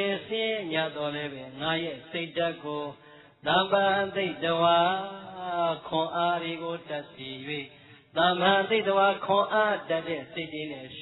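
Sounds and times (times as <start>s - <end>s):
man chanting on held notes: 0.0s - 11.0s.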